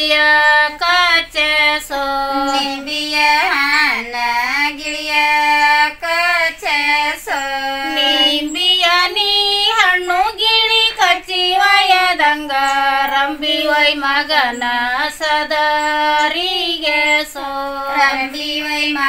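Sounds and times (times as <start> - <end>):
women singing folk song: 0.0 - 19.0.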